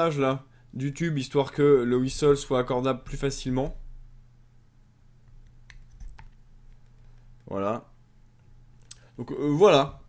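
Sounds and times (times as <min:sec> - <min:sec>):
low hum: 0:00.4 - 0:10.0.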